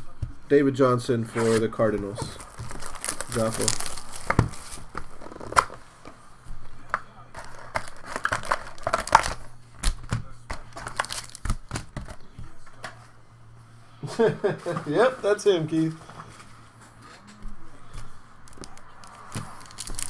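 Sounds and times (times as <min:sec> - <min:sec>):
foil packs crinkling and tearing: 0:01.4 - 0:05.8, 0:07.3 - 0:12.0, 0:18.4 - 0:20.0
cardboard taps and crackles: 0:02.0 - 0:13.0, 0:17.9 - 0:20.0.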